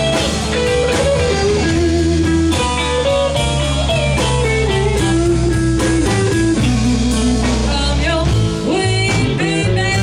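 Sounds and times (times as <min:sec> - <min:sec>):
bass guitar: 0:00.0 - 0:10.0
drums: 0:00.0 - 0:10.0
electric guitar: 0:00.0 - 0:10.0.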